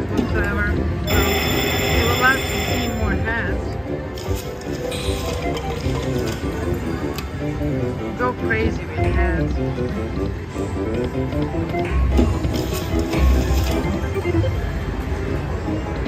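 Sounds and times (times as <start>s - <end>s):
slot machine music and effects: 0.8s - 9.0s, 11.9s - 15.6s
casino chatter: 1.0s - 10.3s.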